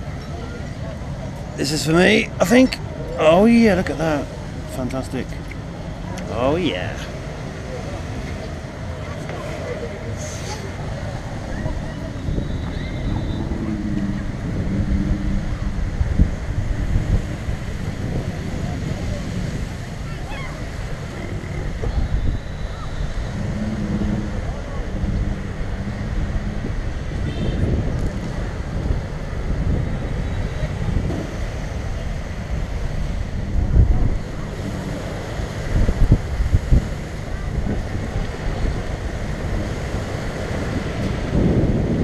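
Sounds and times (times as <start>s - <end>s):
faint voices: 0.0s - 42.0s
wind buffeting microphone: 0.0s - 42.0s.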